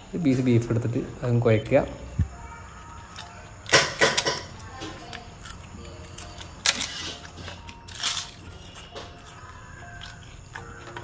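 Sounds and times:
crisp wafer being crunched: 0:05.4 - 0:08.8.

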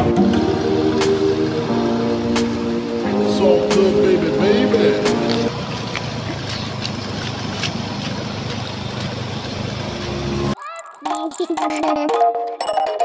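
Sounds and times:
background music: 0:00.0 - 0:05.5
motor scooter engine running: 0:00.0 - 0:10.3.

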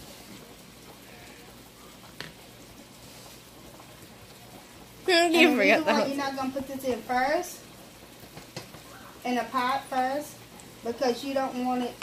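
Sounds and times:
meat sizzling in a skillet: 0:00.0 - 0:12.0.

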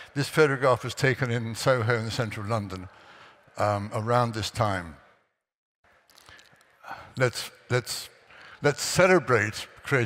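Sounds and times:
man speaking: 0:00.0 - 0:03.0, 0:03.6 - 0:05.0, 0:06.9 - 0:10.0.

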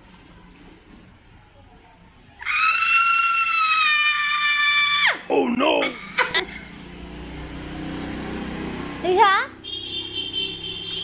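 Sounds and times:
woman screaming: 0:02.4 - 0:05.2.

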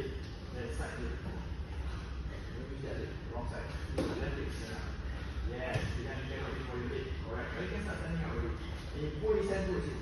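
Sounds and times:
man speaking: 0:00.0 - 0:01.6, 0:02.3 - 0:10.0.

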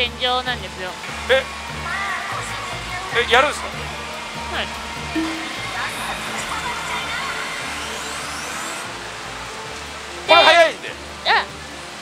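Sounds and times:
rising electronic whistle: 0:05.2 - 0:06.3
gaming machine noise: 0:05.2 - 0:09.0.

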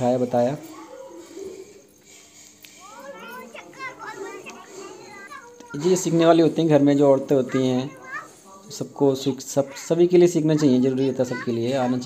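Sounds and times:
children calling and squealing: 0:00.4 - 0:12.0.

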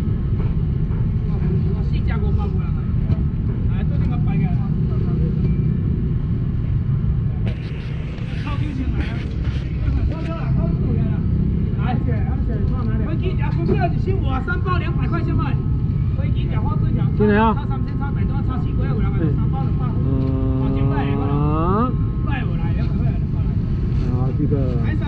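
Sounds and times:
steady low rumble: 0:00.0 - 0:25.0
scattered voices: 0:07.1 - 0:25.0.

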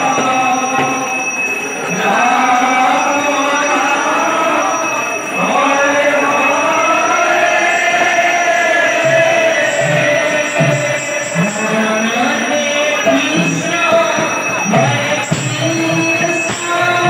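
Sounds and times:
man singing through loudspeaker: 0:00.0 - 0:17.0.

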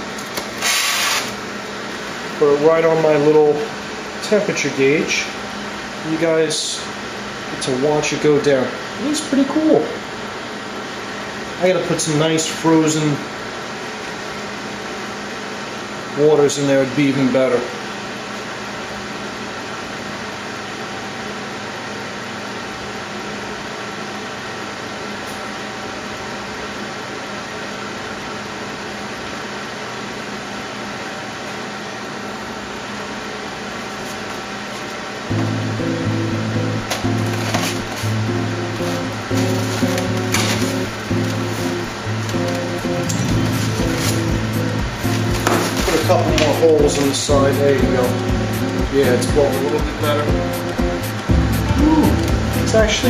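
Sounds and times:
small electric fan humming: 0:00.0 - 0:53.0
background music with low notes: 0:35.3 - 0:53.0.

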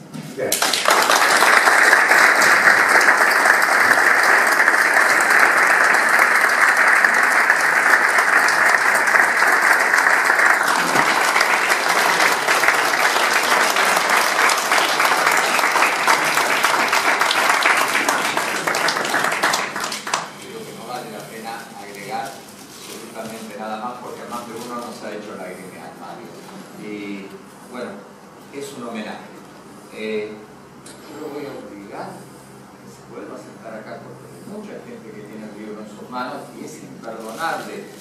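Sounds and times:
audience applauding: 0:00.5 - 0:20.7.

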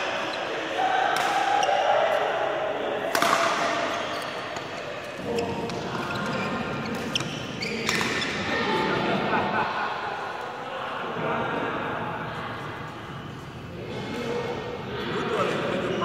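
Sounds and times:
rackets hitting shuttlecock: 0:00.4 - 0:02.4, 0:03.0 - 0:06.0, 0:06.8 - 0:08.5.

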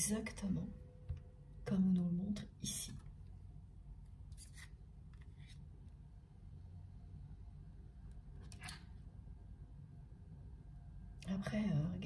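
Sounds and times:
cards scraping and sliding: 0:04.3 - 0:05.7.

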